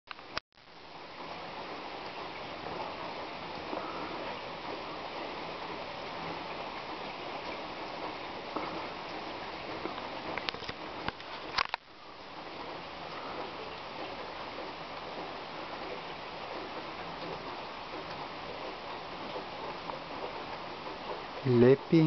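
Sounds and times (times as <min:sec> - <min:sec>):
rain falling: 0:00.1 - 0:22.0.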